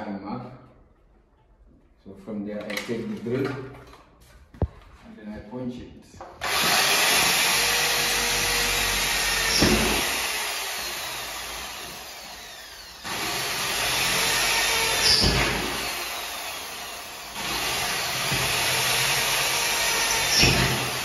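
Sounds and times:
electric drill whining: 6.4 - 21.0.

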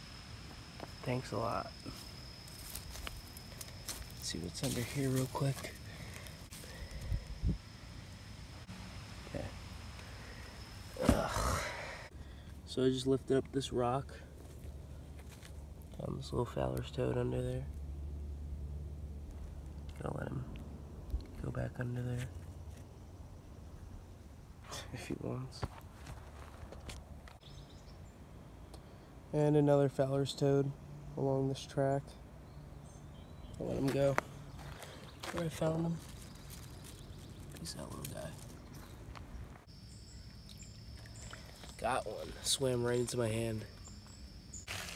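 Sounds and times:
faint high-pitched whine: 0.0 - 44.9
faint high bird chirps: 32.4 - 44.8.

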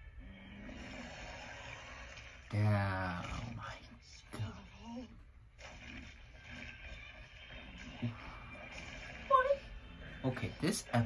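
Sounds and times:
faint soundtrack music: 0.0 - 11.0.

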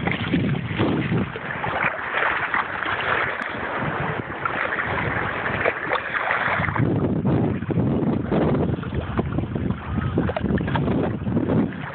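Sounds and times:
water rushing past a boat: 0.0 - 11.9
wind buffeting microphone: 0.0 - 11.9.

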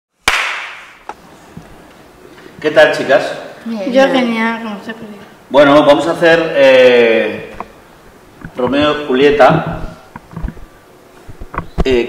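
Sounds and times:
sharp loud crack: 0.2 - 1.0.

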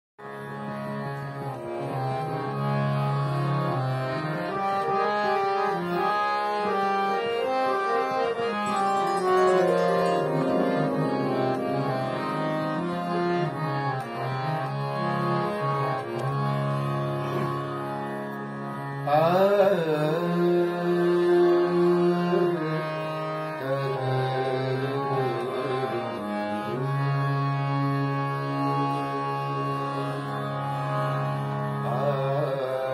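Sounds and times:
harmonium melody: 0.2 - 32.9
wavering bending tone: 8.6 - 11.9.

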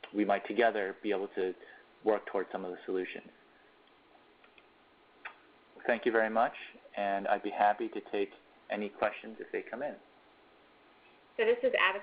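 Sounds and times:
faint line hiss: 0.0 - 12.0
soft clicks: 3.8 - 5.5
person speaking: 5.2 - 10.1.

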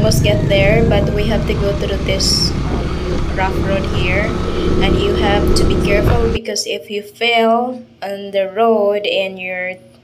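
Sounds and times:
motorcycle engine running: 0.0 - 6.4.

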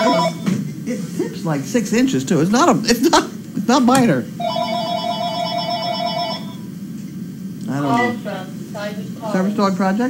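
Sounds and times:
electronic phone ring tone: 0.0 - 0.5, 4.4 - 6.7.

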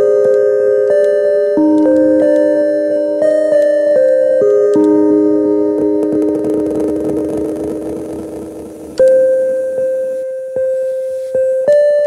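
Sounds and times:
synthesizer notes with echoes: 0.0 - 12.0
loud synthesizer note ringing: 5.6 - 10.8.

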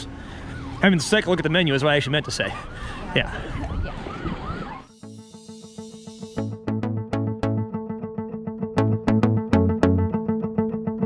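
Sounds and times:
siren yelping: 0.0 - 5.0
street noise: 0.0 - 6.5
music with plucked notes: 4.9 - 11.0.

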